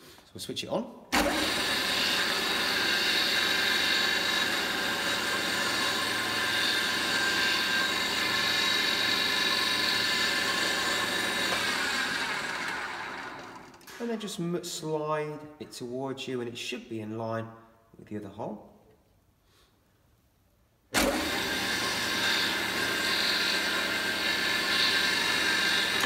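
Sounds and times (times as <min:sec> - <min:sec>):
drill bit boring into wood: 0:01.2 - 0:13.8, 0:21.0 - 0:26.0
drill motor running: 0:01.2 - 0:13.8, 0:21.0 - 0:26.0.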